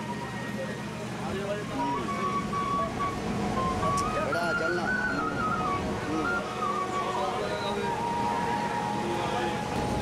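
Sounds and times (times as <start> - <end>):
high melody of held notes: 0.0 - 10.0.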